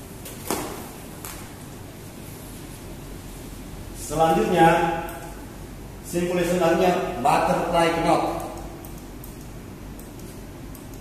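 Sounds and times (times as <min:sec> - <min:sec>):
room hiss: 0:00.0 - 0:11.0
rope slapping: 0:00.2 - 0:01.4.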